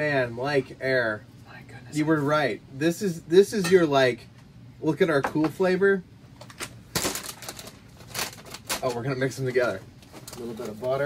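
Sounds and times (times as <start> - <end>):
plastic snack bag crinkling: 6.5 - 9.1.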